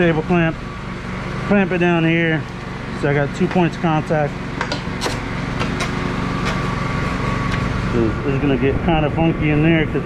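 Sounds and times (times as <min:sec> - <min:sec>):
fan motor hum: 0:00.0 - 0:10.0.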